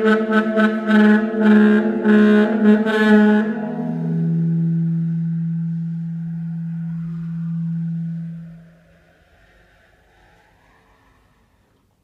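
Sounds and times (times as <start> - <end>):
bass saxophone low note: 0.0 - 9.0.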